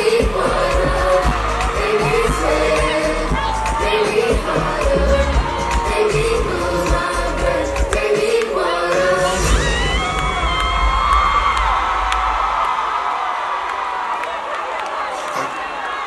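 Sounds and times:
crowd cheering and whooping: 0:00.0 - 0:07.7, 0:09.2 - 0:16.0
live band with heavy bass: 0:00.2 - 0:07.9.

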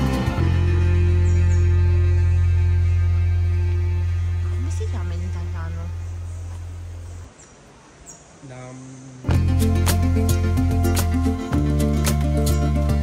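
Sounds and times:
long low bass note: 0:00.0 - 0:06.9.

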